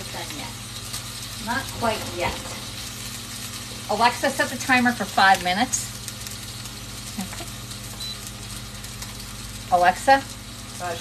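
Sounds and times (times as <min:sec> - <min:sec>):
chicken sizzling in skillet: 0:00.0 - 0:11.0
microwave humming: 0:00.0 - 0:11.0.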